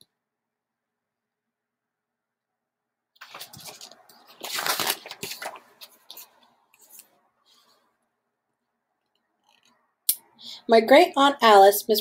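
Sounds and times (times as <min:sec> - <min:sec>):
book pages and cover rustling: 0:03.2 - 0:07.8.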